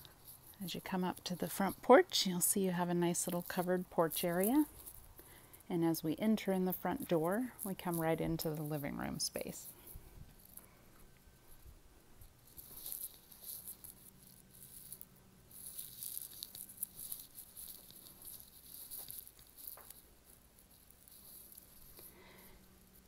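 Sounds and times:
faint low hum: 0.0s - 23.0s.

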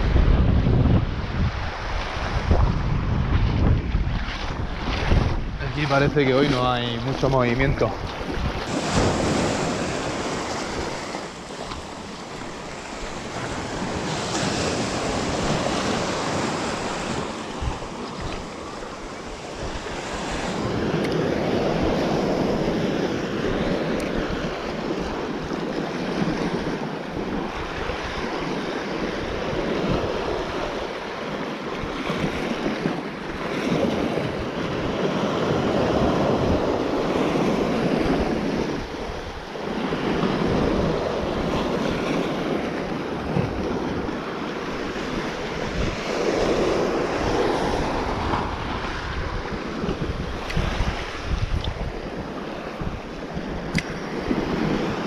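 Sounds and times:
sea waves breaking on shore: 0.0s - 55.0s
wind rumbling on microphone: 0.0s - 55.0s.

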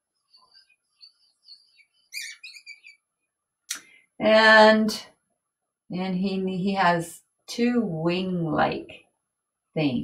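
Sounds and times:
marker tip squeaking: 2.1s - 3.0s.

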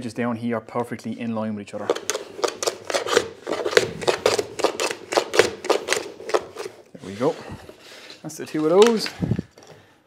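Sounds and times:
hand plane strokes on wood: 1.9s - 9.2s.

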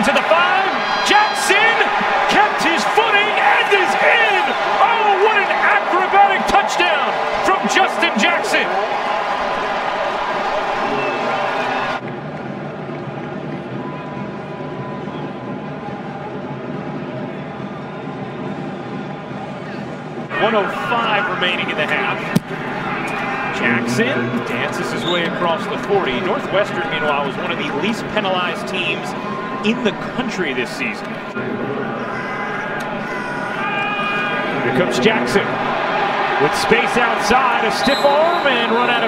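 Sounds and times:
stadium crowd cheering: 0.0s - 39.0s
stadium crowd murmur: 0.0s - 39.0s.

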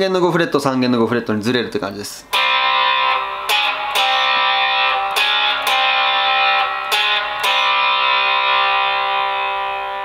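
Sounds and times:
electric guitar chord ringing: 2.3s - 10.0s.

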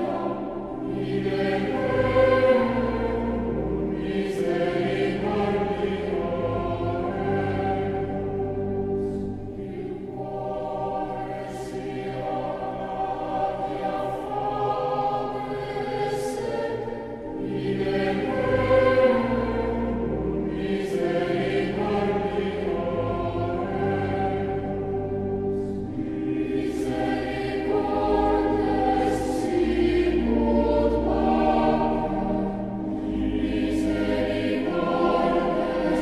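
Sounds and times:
choir singing sustained chords: 0.0s - 36.0s.

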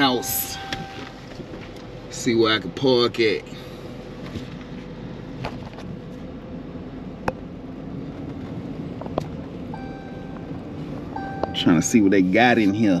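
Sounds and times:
car cabin low hum: 0.0s - 13.0s.

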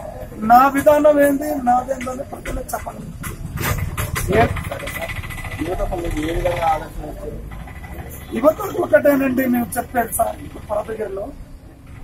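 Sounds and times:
vehicle engine rumbling: 0.0s - 12.0s
man speaking: 8.3s - 11.4s.

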